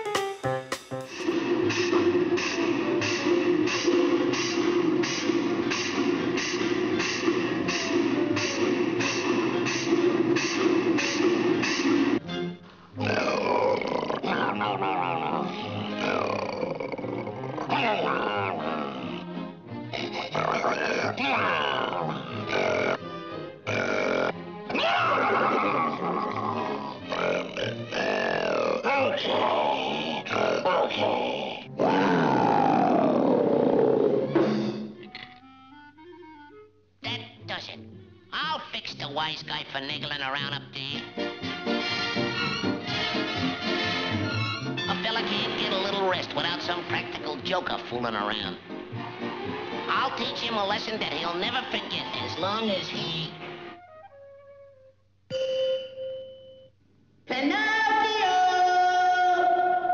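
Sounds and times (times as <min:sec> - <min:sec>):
orchestral cartoon music: 0:00.0 - 0:05.9, 0:06.6 - 0:28.5, 0:34.1 - 0:54.9
cartoon lion growling: 0:01.2 - 0:12.2, 0:12.9 - 0:35.5.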